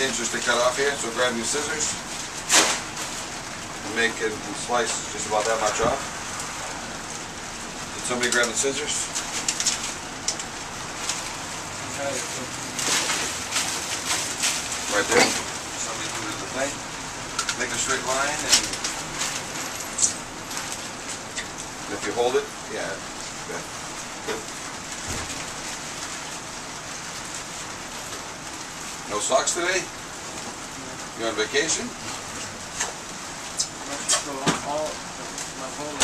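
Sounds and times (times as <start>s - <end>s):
steady background hiss: 0.0s - 36.0s
steady rain falling: 0.0s - 36.0s.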